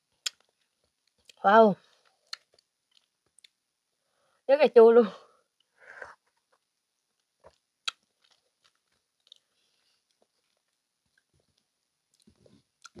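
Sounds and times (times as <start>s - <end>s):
wet mouth clicks and crunches: 0.2s - 1.4s, 2.2s - 3.6s, 7.4s - 9.5s.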